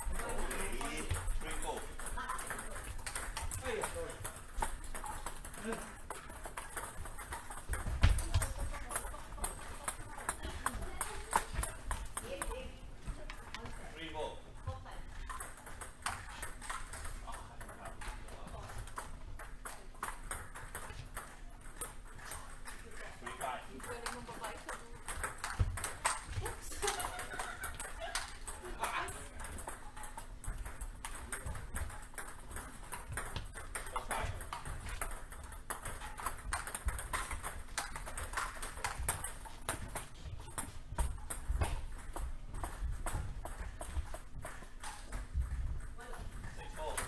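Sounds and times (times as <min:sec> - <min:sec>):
table tennis balls clicking: 0:00.0 - 0:47.0.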